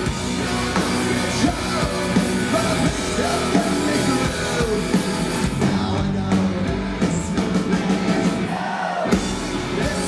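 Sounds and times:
bass guitar: 0.0 - 10.0
distorted electric guitars: 0.0 - 10.0
drum kit: 0.0 - 10.0.

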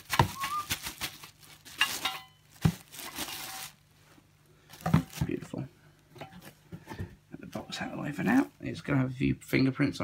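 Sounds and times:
plastic bag crinkling: 0.0 - 4.0, 4.6 - 5.6.

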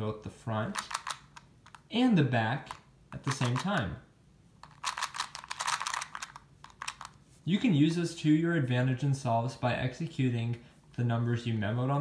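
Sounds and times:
puzzle wheels clicking: 0.7 - 1.8, 2.7 - 3.9, 4.6 - 7.2.

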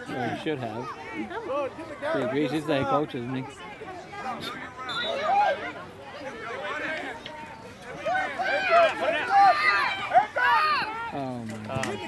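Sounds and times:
children and spectators shouting: 3.3 - 7.2, 7.9 - 11.2.

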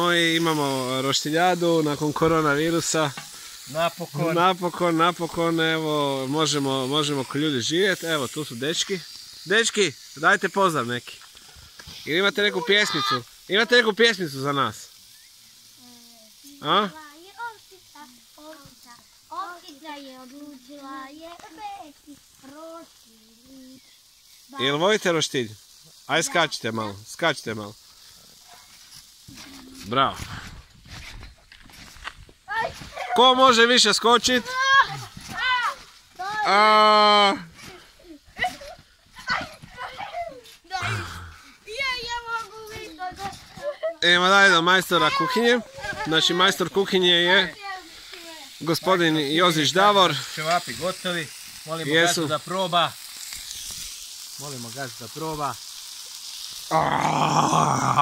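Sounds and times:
man's rough growling yell: 56.7 - 58.0.

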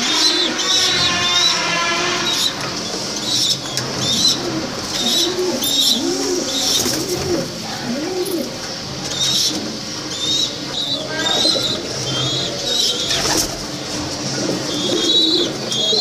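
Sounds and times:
pigeons cooing: 0.0 - 1.4, 2.3 - 16.0.

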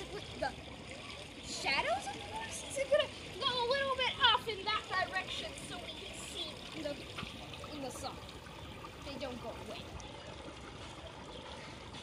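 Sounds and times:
faint pool water sounds: 0.0 - 12.0
child talking: 1.5 - 7.0.

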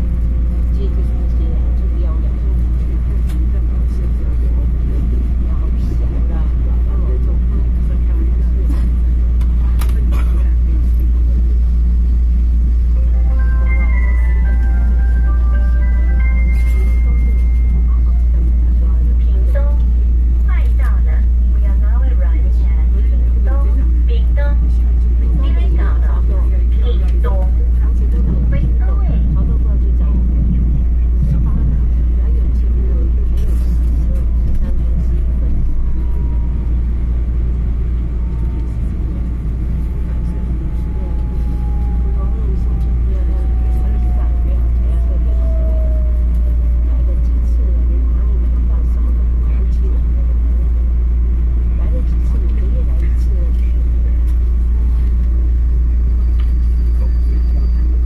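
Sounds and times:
train running gear rumble: 0.0 - 58.0
train braking whine: 55.9 - 58.0.

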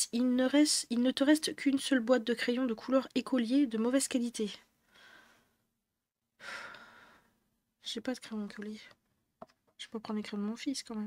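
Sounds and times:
woman breathing and sighing: 4.8 - 5.7, 6.4 - 7.5.

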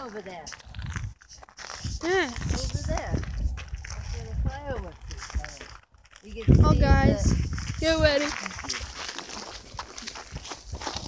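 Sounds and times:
people talking: 0.0 - 0.6, 1.9 - 3.4, 4.0 - 9.4.

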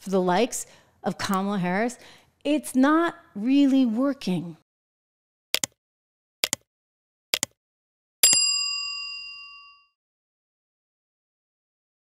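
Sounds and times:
bright bell ding: 8.2 - 10.0.

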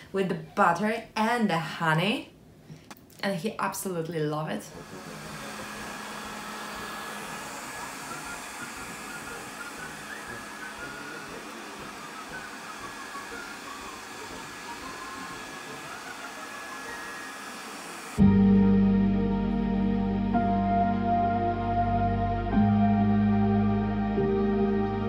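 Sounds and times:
robot vacuum cleaner whirring: 4.7 - 18.2.

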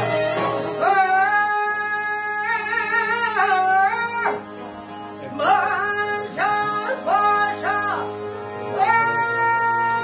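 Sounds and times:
folk ensemble with lutes and accordion: 0.0 - 10.0
person singing: 0.0 - 10.0.

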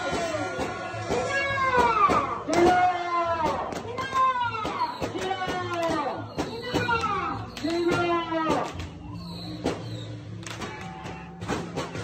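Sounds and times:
percussion strikes: 0.0 - 8.9.

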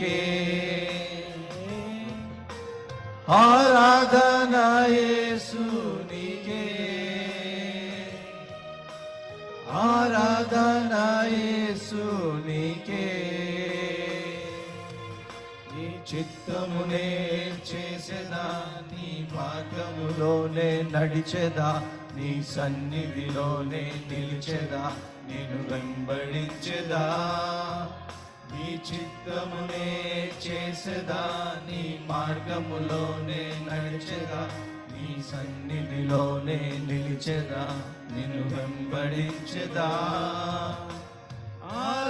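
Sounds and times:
men singing worship song: 0.0 - 2.7, 3.3 - 8.6, 9.7 - 15.1, 15.7 - 42.0
sustained backing tones: 0.0 - 42.0.

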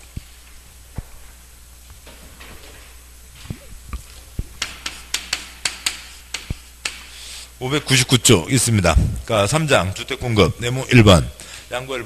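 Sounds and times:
chalk tapping on blackboard: 4.6 - 7.2.

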